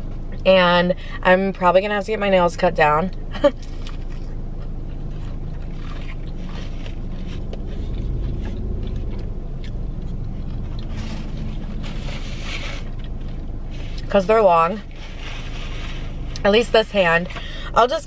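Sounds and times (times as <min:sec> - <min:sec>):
low rumble inside car: 0:00.0 - 0:18.0
faint chewing: 0:03.1 - 0:14.2.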